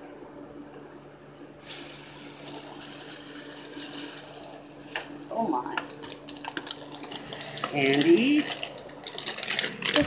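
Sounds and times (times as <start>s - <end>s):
steady low hum: 0.0s - 10.0s
paper gift bag rustling: 1.7s - 10.0s.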